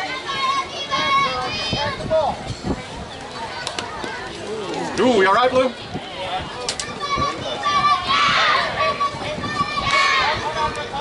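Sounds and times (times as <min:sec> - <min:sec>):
girls calling and cheering: 0:00.0 - 0:04.9, 0:05.6 - 0:11.0.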